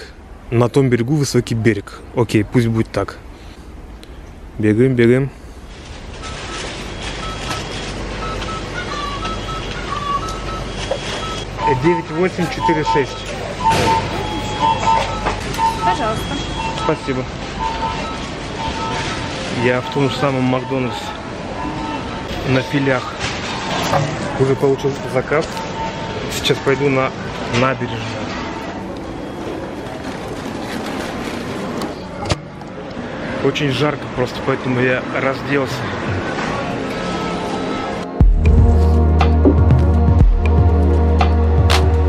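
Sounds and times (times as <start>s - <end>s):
busy restaurant background noise: 0.0s - 38.2s
high electronic beeps in pairs: 8.2s - 20.9s.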